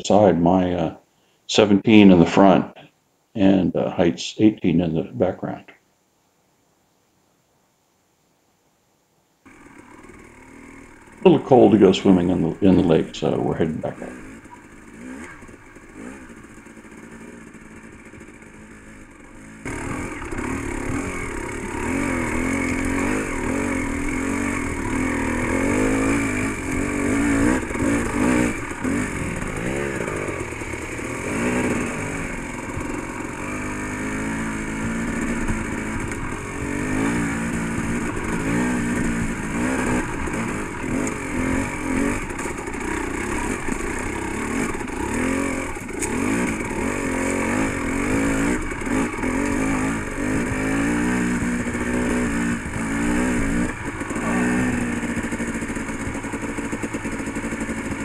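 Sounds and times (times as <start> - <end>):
dirt bike engine revving: 9.5 - 58.0.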